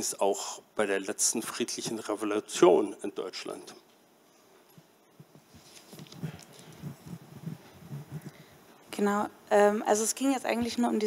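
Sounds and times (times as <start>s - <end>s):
rustling: 4.3s - 8.8s.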